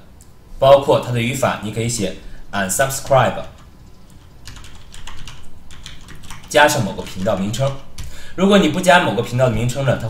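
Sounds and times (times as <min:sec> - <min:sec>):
typing on computer keyboard: 0:03.6 - 0:08.1.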